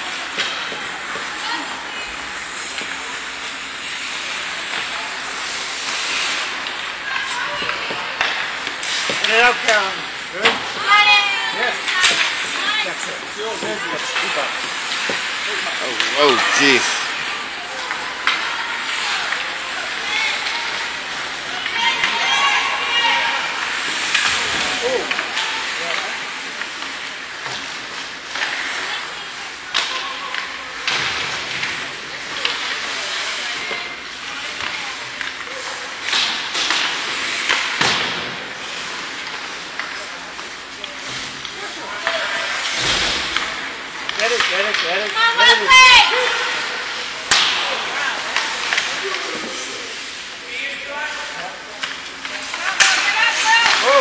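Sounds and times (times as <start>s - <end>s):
skates hissing on ice: 0.0s - 44.5s, 45.1s - 54.0s
spectators chatting: 0.0s - 54.0s.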